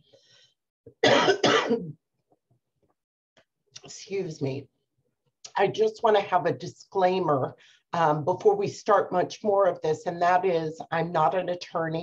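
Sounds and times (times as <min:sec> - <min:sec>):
person coughing: 0:01.0 - 0:02.0.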